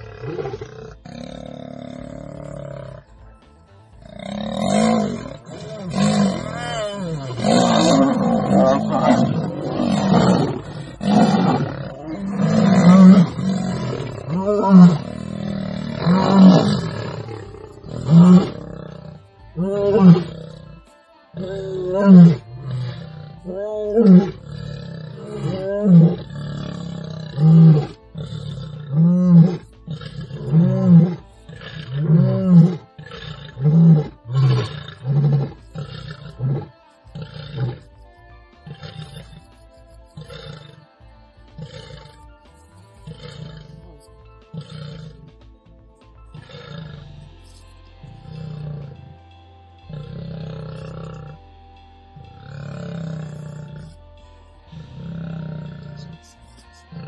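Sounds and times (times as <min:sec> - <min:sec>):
lion roaring: 0:00.0 - 0:03.2, 0:04.0 - 0:38.0, 0:38.6 - 0:39.4, 0:40.2 - 0:40.8, 0:41.6 - 0:42.3, 0:43.0 - 0:45.3, 0:46.3 - 0:49.2, 0:49.9 - 0:51.5, 0:52.2 - 0:54.0, 0:54.7 - 0:56.2.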